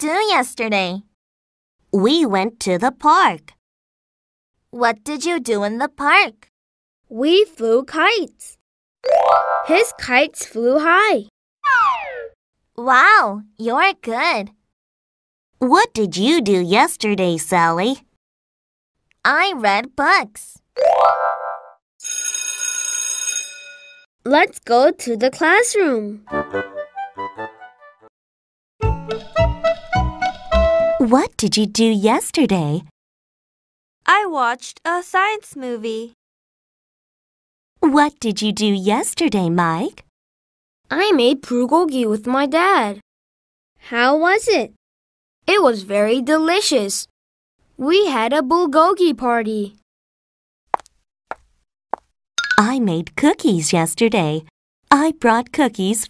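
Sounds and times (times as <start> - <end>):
cartoon pops: 11.6 - 12.4
electric school bell ringing: 22.0 - 24.0.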